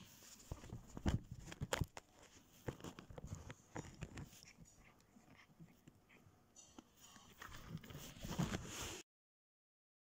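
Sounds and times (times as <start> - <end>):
cat scratching a woven rug: 0.3 - 6.2.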